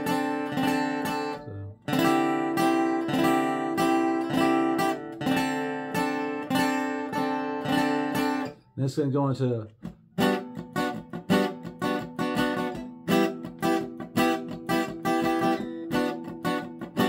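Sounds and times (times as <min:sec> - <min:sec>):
acoustic guitar strumming chords: 0:00.0 - 0:17.0.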